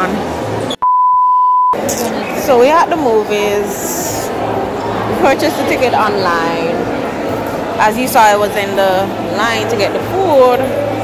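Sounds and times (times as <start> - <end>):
censor bleep tone: 0.7 - 1.8
voices chattering: 1.8 - 11.0.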